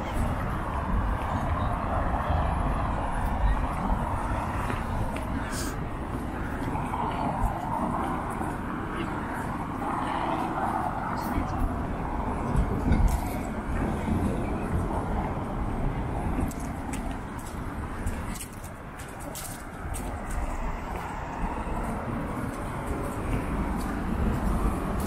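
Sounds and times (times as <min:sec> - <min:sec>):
cars passing: 0:00.0 - 0:25.0
voices of passers-by: 0:00.0 - 0:25.0.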